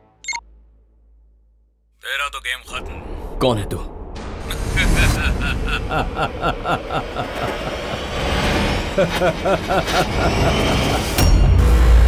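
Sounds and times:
man laughing tauntingly: 4.5 - 8.2, 8.8 - 11.3.

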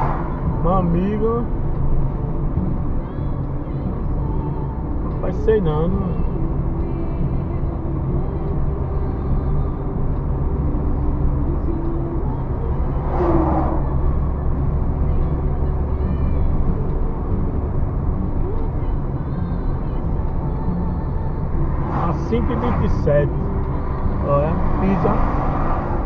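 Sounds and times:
car engine and tyres drone: 0.0 - 26.0.

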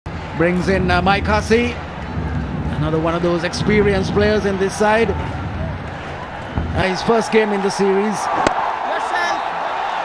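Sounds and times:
stadium crowd murmur: 0.1 - 10.0.

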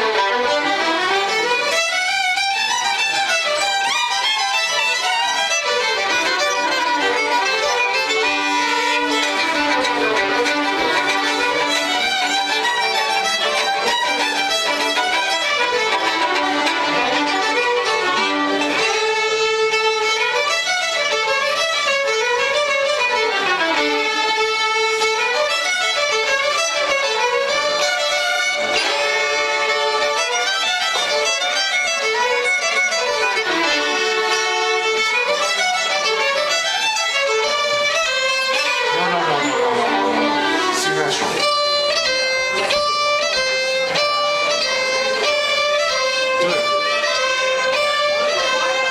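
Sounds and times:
fiddles playing a tune: 0.0 - 48.9.

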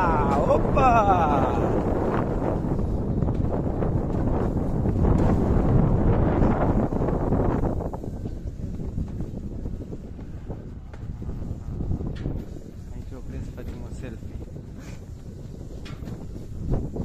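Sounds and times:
coaster sled rumbling on track: 0.0 - 17.0
wind buffeting microphone: 0.0 - 17.0.

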